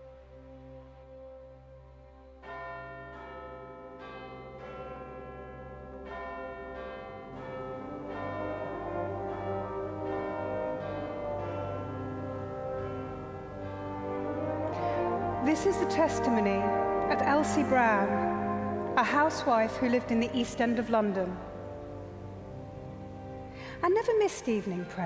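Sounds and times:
church bells ringing: 2.4s - 25.0s
low steady drone: 6.9s - 25.0s.

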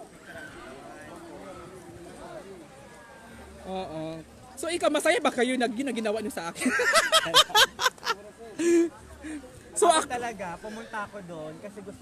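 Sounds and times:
indistinct voices talking quietly: 0.0s - 12.0s.

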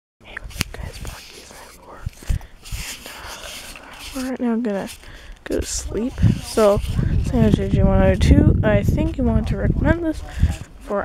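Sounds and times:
person whispering: 0.2s - 7.6s.

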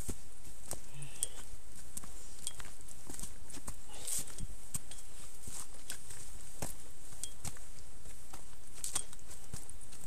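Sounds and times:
footsteps on rocky trail: 0.0s - 10.0s.

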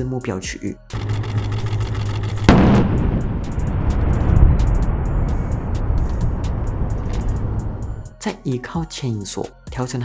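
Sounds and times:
loud explosion blast: 2.5s - 7.8s
long rolling rumble: 2.5s - 8.0s.

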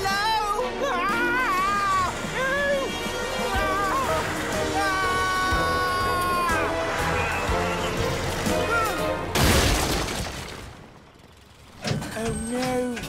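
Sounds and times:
dramatic music: 0.0s - 11.0s.

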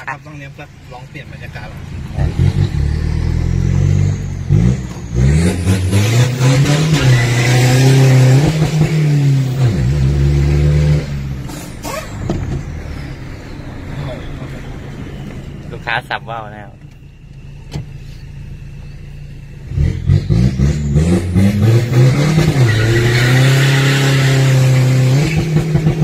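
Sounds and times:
diesel engine accelerating: 0.0s - 26.0s.

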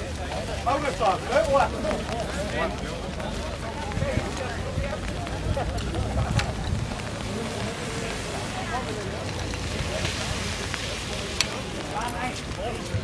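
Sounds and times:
indistinct chatter of voices: 0.0s - 13.0s
wind rumbling on microphone: 0.0s - 13.0s.

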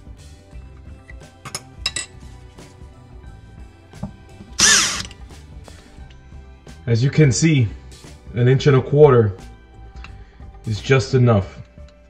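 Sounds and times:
faint background music: 0.0s - 12.0s
sharp noisy burst: 4.6s - 5.1s.

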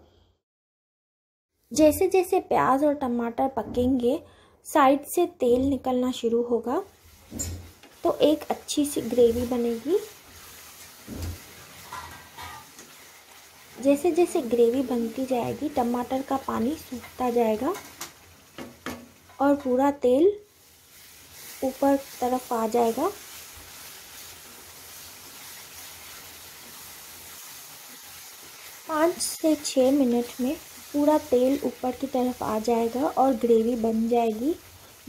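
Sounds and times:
gravy sizzling in oil: 6.2s - 35.0s
faint scrapes against pan: 9.0s - 13.4s.

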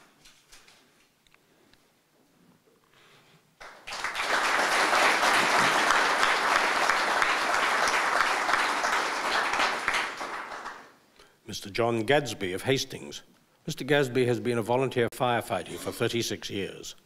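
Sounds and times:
audience applauding: 3.6s - 11.0s.

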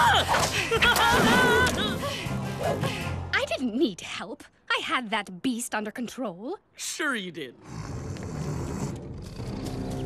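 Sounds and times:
low sustained background music: 0.0s - 3.9s.

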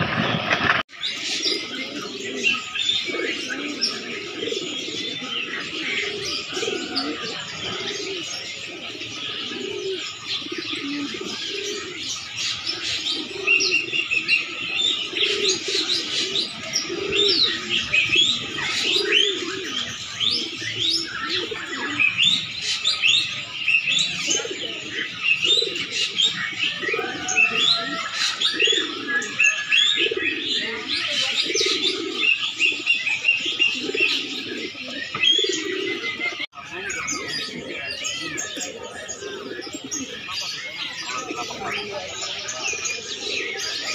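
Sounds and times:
pigeons cooing: 0.0s - 43.9s.

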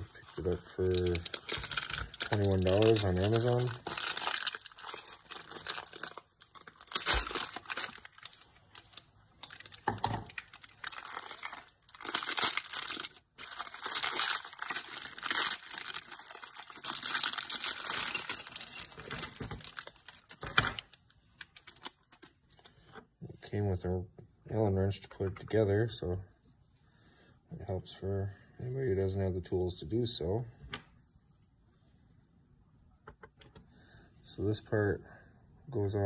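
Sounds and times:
plastic bag being opened: 0.4s - 22.4s.

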